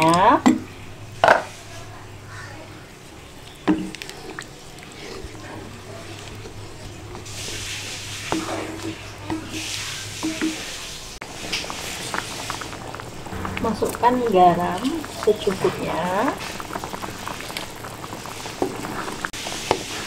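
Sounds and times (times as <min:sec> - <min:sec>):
liquid sloshing and hiss: 0:00.7 - 0:20.0
spatula stirring curry in a pan: 0:03.1 - 0:20.0.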